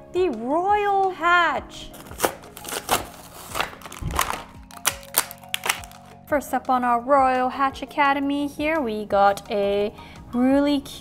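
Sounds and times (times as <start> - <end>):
packaging tearing and crinkling: 2.0 - 6.1.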